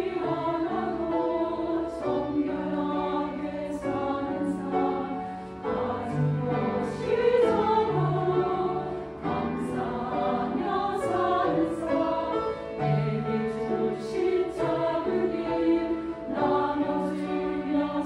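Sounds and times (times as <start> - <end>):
choir singing: 0.0 - 18.0
grand piano accompaniment: 0.0 - 18.0.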